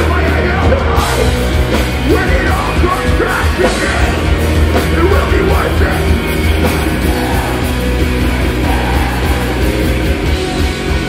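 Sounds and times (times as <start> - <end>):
loud rock band playing: 0.0 - 11.0.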